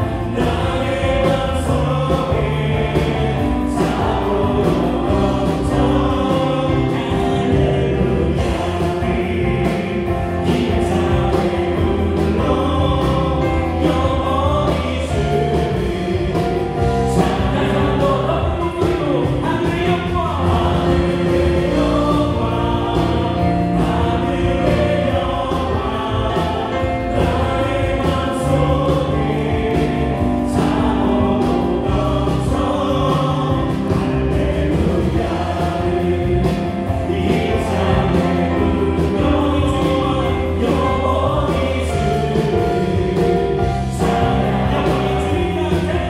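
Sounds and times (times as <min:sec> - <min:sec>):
bass guitar notes: 0:00.0 - 0:46.0
drum beat: 0:00.0 - 0:46.0
worship band playing: 0:00.0 - 0:46.0.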